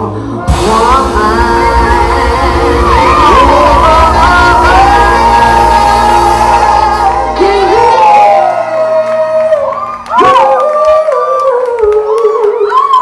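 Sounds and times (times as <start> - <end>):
bass: 0.0 - 13.0
live music with singing: 0.0 - 13.0
voices whooping: 3.2 - 13.0.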